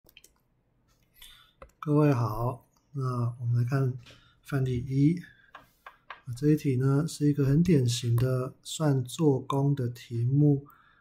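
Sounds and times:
man speaking: 1.8s - 5.4s, 6.2s - 10.7s.

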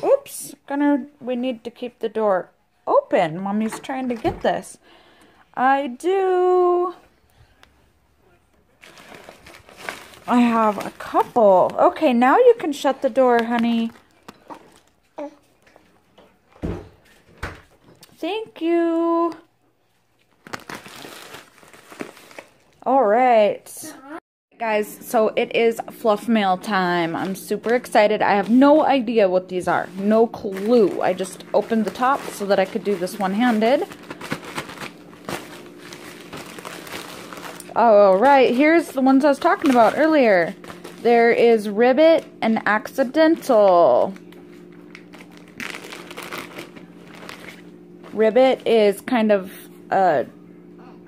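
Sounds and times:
padded envelope rustling: 8.8s - 12.1s, 20.2s - 22.8s, 29.9s - 41.5s, 43.0s - 48.2s.

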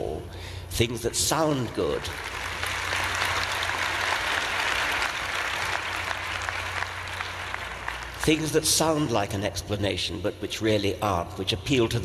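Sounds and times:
large audience applauding: 1.8s - 8.6s.

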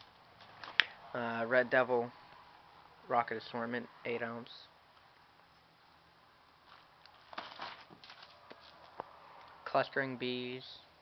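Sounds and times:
plastic wrapper rustling: 6.6s - 8.8s.

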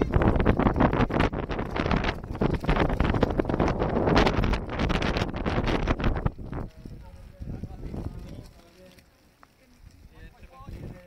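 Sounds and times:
wind buffeting microphone: 0.0s - 8.7s, 9.8s - 11.0s.

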